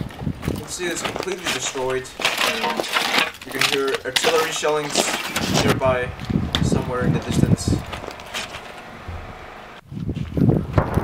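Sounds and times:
wind on microphone: 0:00.0 - 0:00.7, 0:05.4 - 0:11.0.

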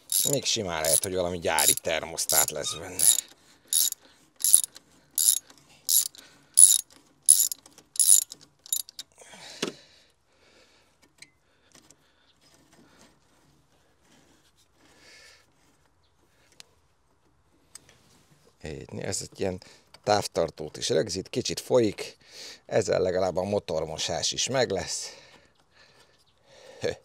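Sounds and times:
metal scrape: 0:00.0 - 0:09.0
ratchet wrench clicking: 0:00.0 - 0:09.0.

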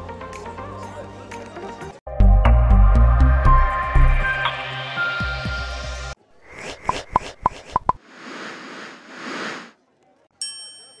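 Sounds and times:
popping blips: 0:06.6 - 0:08.0.

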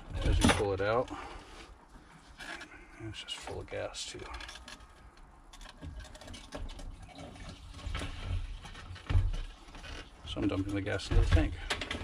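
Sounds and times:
plastic parts knocking: 0:07.9 - 0:12.0.

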